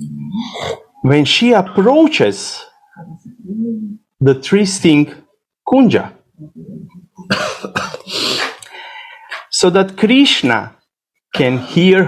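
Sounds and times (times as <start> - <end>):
person coughing: 7.2 - 8.6.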